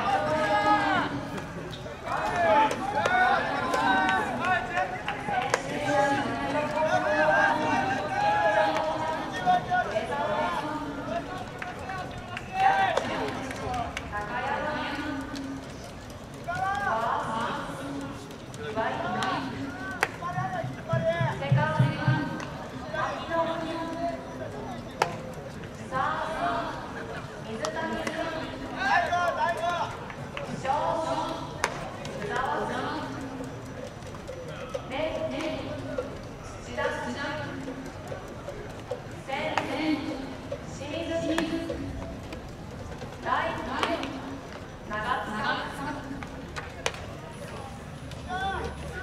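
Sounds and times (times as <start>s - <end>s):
voices carrying: 0.0s - 49.0s.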